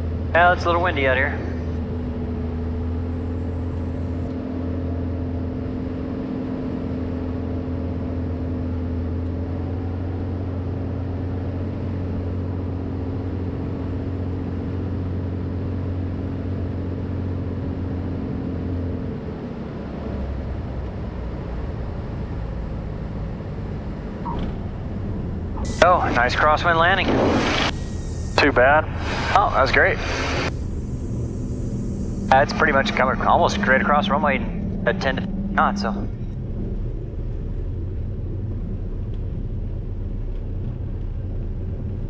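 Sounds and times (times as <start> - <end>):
propeller plane engine running: 0.0 - 42.0
airflow rushing: 25.6 - 37.2.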